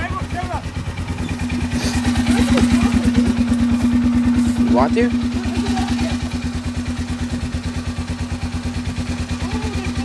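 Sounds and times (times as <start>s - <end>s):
quad engine at low revs: 0.0s - 10.0s.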